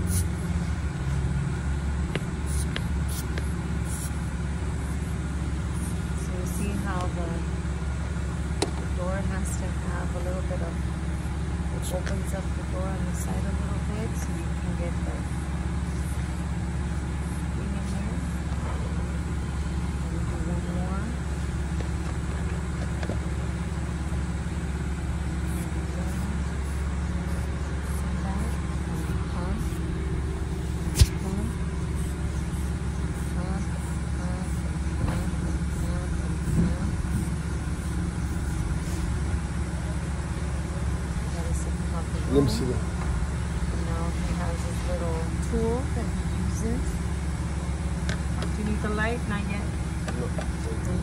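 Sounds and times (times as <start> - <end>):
truck engine idling: 0.0 - 51.0
faint voices: 39.6 - 43.0.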